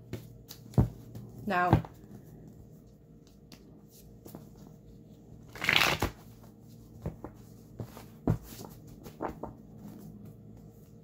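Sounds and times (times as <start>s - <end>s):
cards being shuffled: 5.4s - 10.0s.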